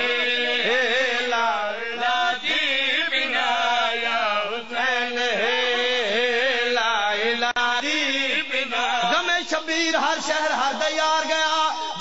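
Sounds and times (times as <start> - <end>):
voices chanting religious recitation: 0.0 - 12.0.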